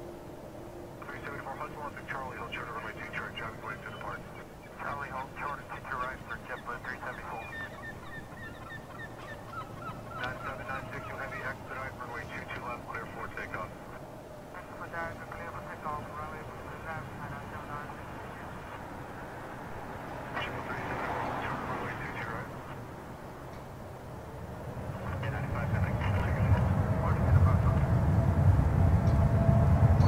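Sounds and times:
steady low rumble: 0.0s - 30.0s.

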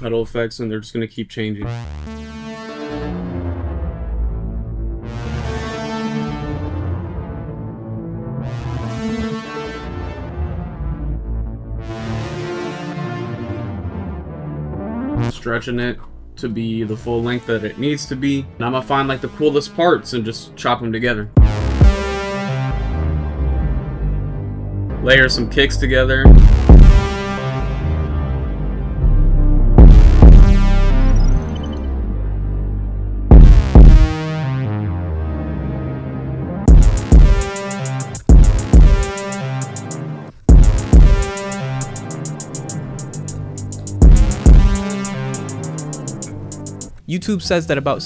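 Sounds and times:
synthesizer lead melody: 1.7s - 15.3s, 21.4s - 25.1s, 26.3s - 47.0s.

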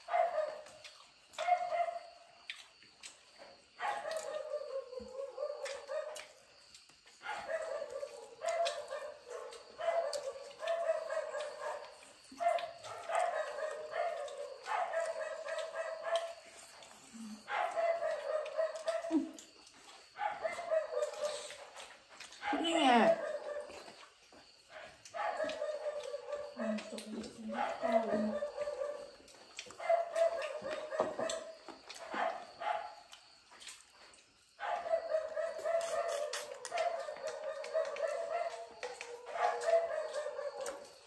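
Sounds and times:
dog yelping: 3.8s - 6.2s, 7.2s - 16.4s, 17.5s - 19.4s, 20.2s - 21.5s, 22.4s - 23.8s, 25.2s - 29.1s, 29.8s - 31.5s, 34.6s - 40.8s.

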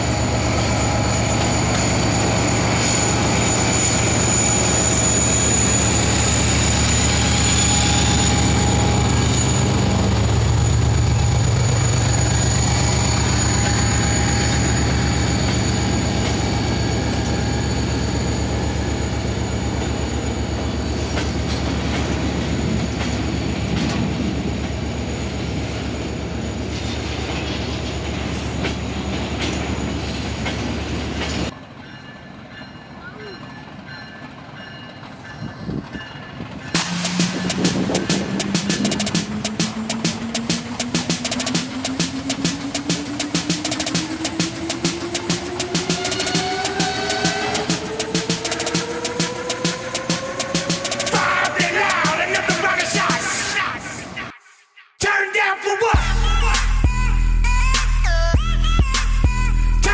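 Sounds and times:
diesel engine drone: 0.0s - 21.6s, 36.8s - 54.0s
high wheel squeal: 0.0s - 31.5s, 35.1s - 54.2s.

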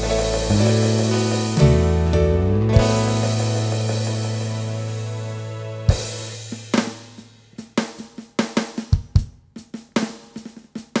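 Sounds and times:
bass drum thumps: 0.0s - 4.9s
drum hits: 0.0s - 4.9s, 5.9s - 9.4s.

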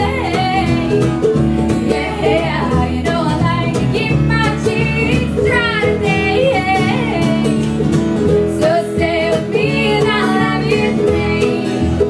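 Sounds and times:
acoustic guitar: 0.0s - 12.0s
upright bass: 0.0s - 12.0s.

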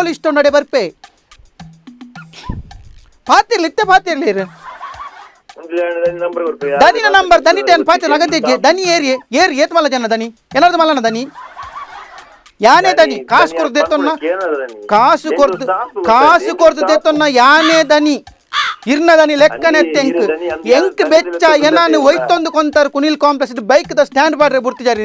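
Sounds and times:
person speaking: 5.5s - 11.4s, 12.6s - 25.0s.

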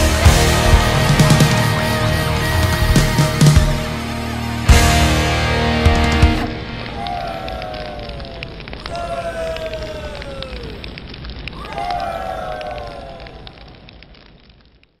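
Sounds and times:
bonfire crackling and popping: 0.0s - 15.0s.

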